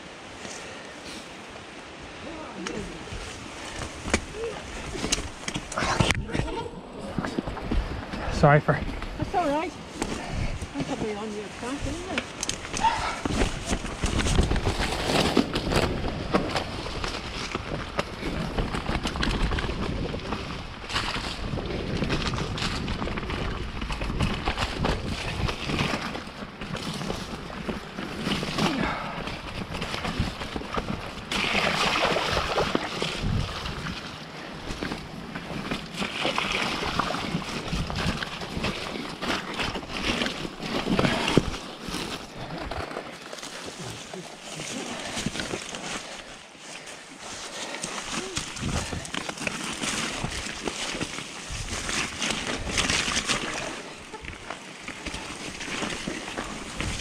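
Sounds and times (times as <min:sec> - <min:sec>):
tyres rolling through mud: 0:02.2 - 0:57.0
bike rattling and knocking: 0:11.8 - 0:43.2, 0:47.6 - 0:57.0.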